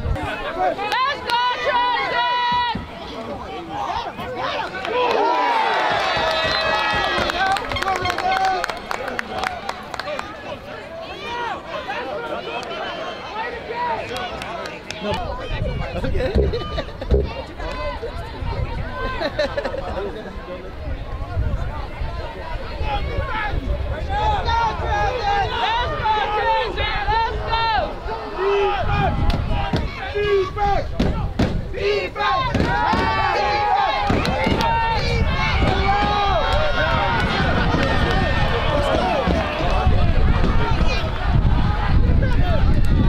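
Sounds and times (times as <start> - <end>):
people shouting and calling: 0.1 - 8.6, 21.8 - 43.0
wind rumble on microphone: 15.2 - 19.3, 20.7 - 27.6, 28.7 - 30.1, 34.0 - 43.0.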